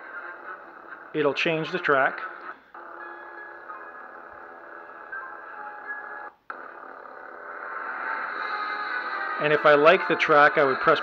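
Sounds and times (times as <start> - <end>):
music from small speaker: 7.9 - 11.0.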